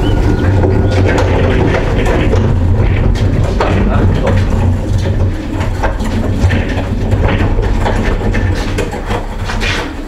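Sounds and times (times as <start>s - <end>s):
freezer rolling on trolley wheels: 0.0s - 10.0s
knocks and rattles: 0.0s - 10.0s.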